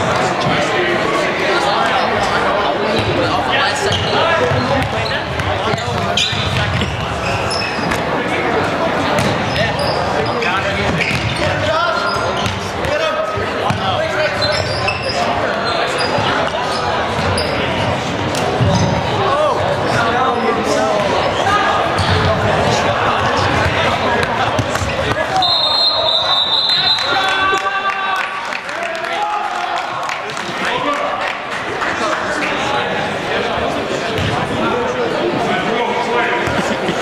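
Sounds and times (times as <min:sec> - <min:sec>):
players' voices echoing: 0:00.0 - 0:37.0.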